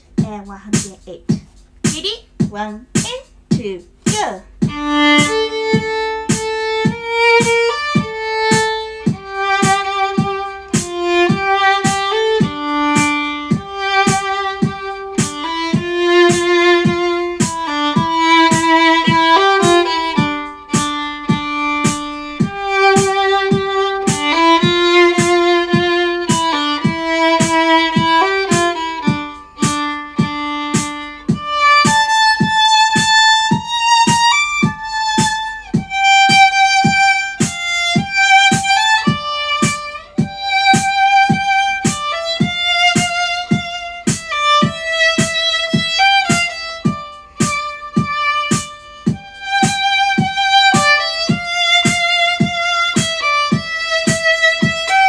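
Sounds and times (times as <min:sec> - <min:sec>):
steady ticking beat: 0:00.0 - 0:55.0
solo violin melody: 0:04.6 - 0:55.0.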